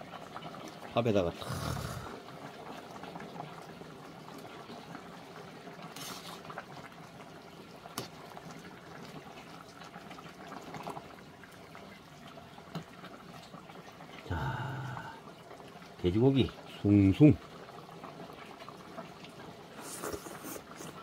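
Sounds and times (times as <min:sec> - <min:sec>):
thick sauce bubbling in a pot: 0:00.0 - 0:21.0.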